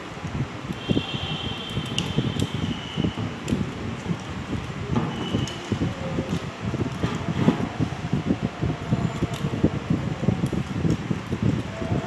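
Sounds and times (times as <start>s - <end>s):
fan air buffeting microphone: 0.0s - 12.0s.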